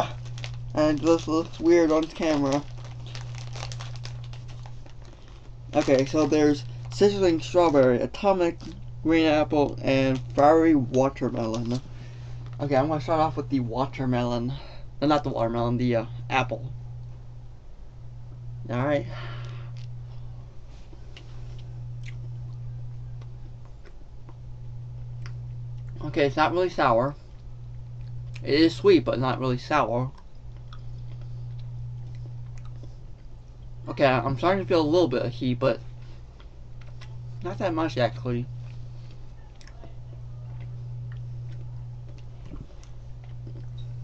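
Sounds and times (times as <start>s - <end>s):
plastic bag crinkling: 0.0s - 7.6s, 8.6s - 12.7s
low electrical hum: 0.0s - 44.0s.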